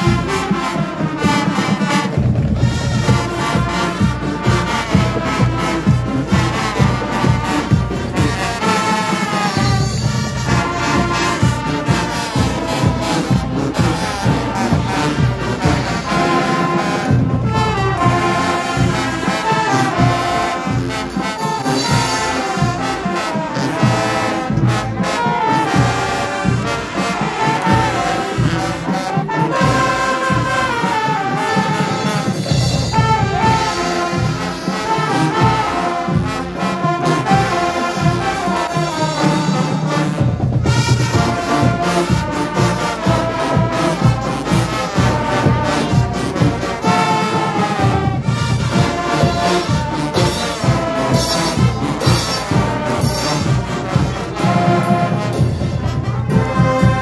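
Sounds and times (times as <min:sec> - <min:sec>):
marching band playing: 0:00.0 - 0:57.0.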